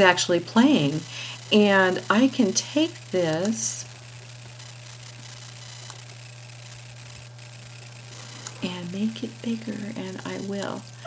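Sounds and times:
low hum with hiss: 0:00.0 - 0:11.0.

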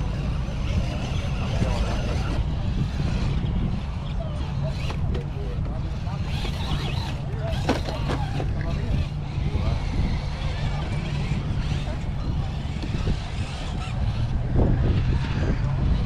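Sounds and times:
steady low rumble: 0:00.0 - 0:16.0
people talking indistinctly: 0:00.6 - 0:14.8.

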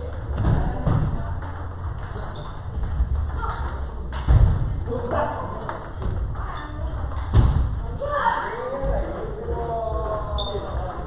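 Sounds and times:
table tennis balls clicking: 0:00.0 - 0:11.0
voices in a hall: 0:00.0 - 0:11.0.

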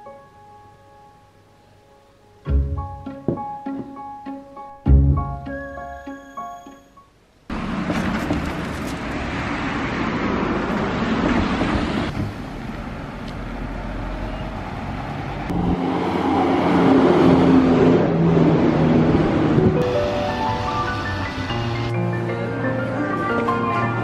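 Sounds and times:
road traffic: 0:07.2 - 0:24.0
vehicle engine droning: 0:07.5 - 0:22.7.

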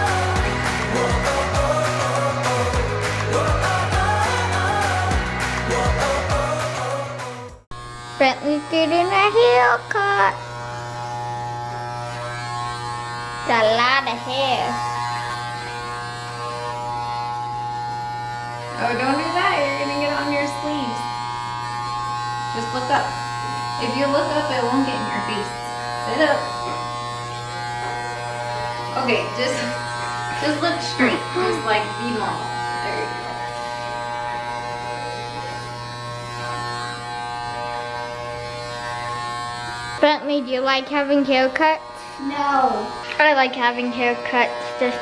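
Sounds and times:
electric hair clippers buzzing: 0:00.0 - 0:45.0.

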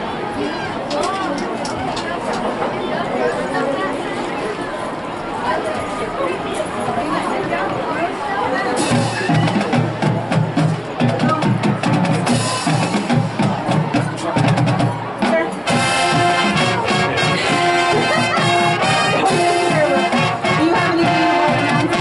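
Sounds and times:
marching band percussion strikes: 0:08.8 - 0:22.0
brass sustained chords: 0:15.7 - 0:22.0.

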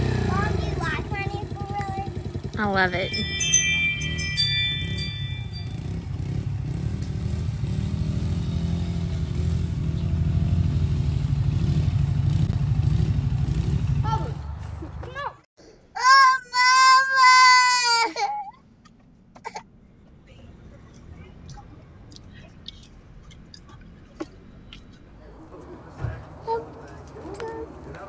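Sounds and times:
toddler crying: 0:16.0 - 0:18.5.

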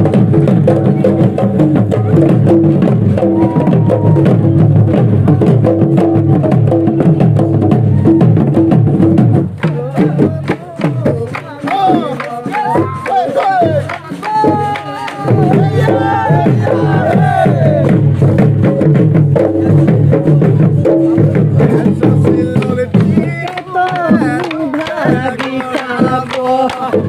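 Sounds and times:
dhol drums beaten fast: 0:00.0 - 0:27.0
group singing and shouting: 0:09.2 - 0:18.3, 0:19.4 - 0:27.0.

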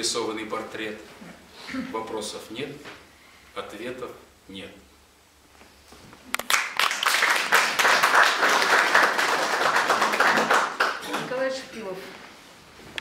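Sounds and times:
audience applauding: 0:06.4 - 0:11.3.

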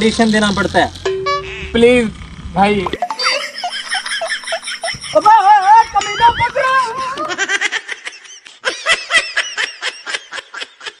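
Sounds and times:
high-pitched laughter: 0:03.0 - 0:11.0.

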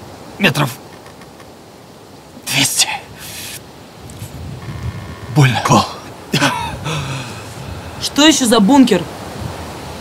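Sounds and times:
man exhaling breathily: 0:06.8 - 0:08.0.

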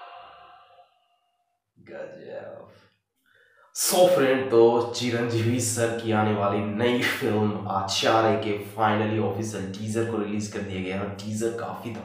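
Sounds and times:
steady held tone: 0:00.0 - 0:02.6.

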